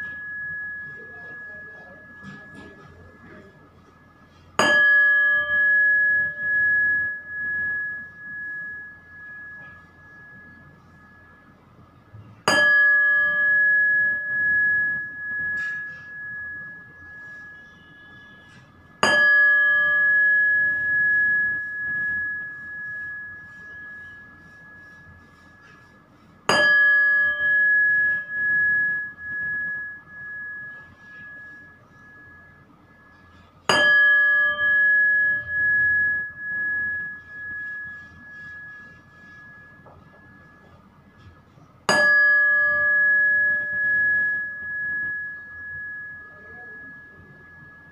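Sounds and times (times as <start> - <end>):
metal bell ringing: 0.0 - 11.6, 12.5 - 47.9.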